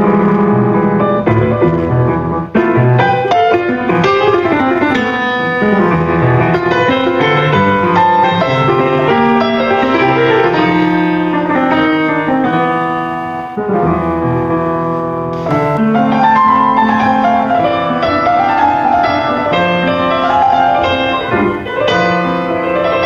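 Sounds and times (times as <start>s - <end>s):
grand piano playing: 0.0s - 23.0s.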